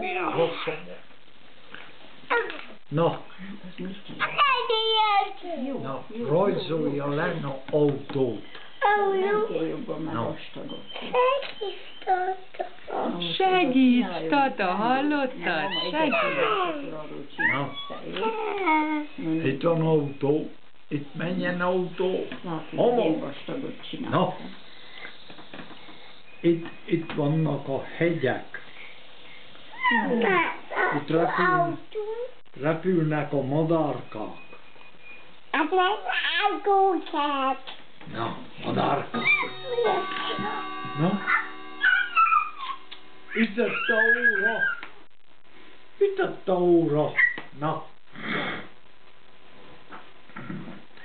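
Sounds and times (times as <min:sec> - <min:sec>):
people talking: 0:00.0 - 0:01.0, 0:02.3 - 0:24.6, 0:26.4 - 0:28.6, 0:29.8 - 0:34.4, 0:35.6 - 0:44.9, 0:46.0 - 0:47.9, 0:50.4 - 0:50.8
toddler whining: 0:11.1 - 0:13.1, 0:15.8 - 0:19.1, 0:29.7 - 0:32.3, 0:39.2 - 0:42.9, 0:43.7 - 0:44.8
small child squealing: 0:39.2 - 0:42.9, 0:43.6 - 0:44.8.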